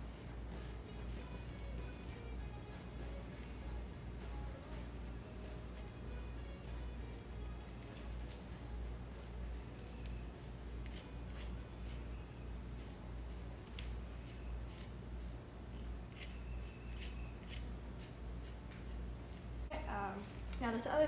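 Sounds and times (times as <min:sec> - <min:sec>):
scraper scratching wax: 0:10.7 - 0:19.5.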